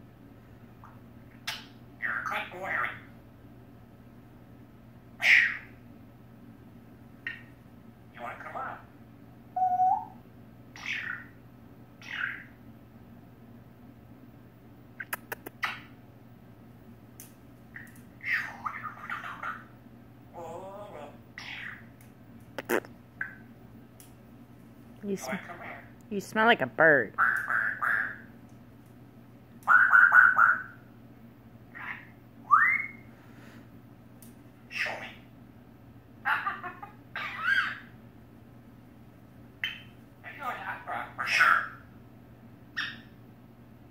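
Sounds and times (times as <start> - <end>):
parrot call: 5.2 - 5.8, 9.6 - 11.4, 12.0 - 12.6, 17.8 - 19.7, 20.4 - 21.9, 27.2 - 28.3, 29.6 - 30.8, 31.7 - 33.1, 34.7 - 35.3, 36.2 - 37.9, 39.6 - 41.9, 42.8 - 43.2.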